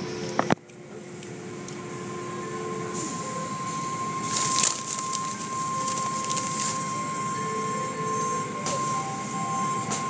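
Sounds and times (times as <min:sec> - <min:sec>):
car wash machinery running: 0:00.0 - 0:10.0
steady high whine: 0:00.0 - 0:10.0.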